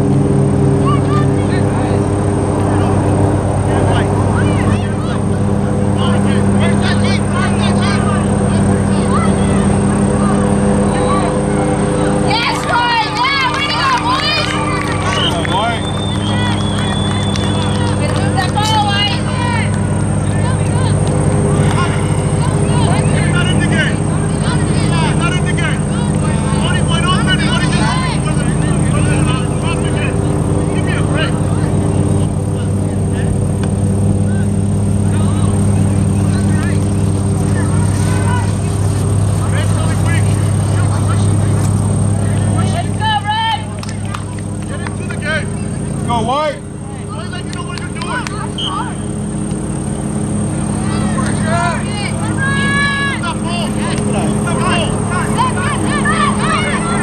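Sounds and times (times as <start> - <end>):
distant shouts and calls: 0.0 - 57.0
low mechanical hum: 0.0 - 57.0.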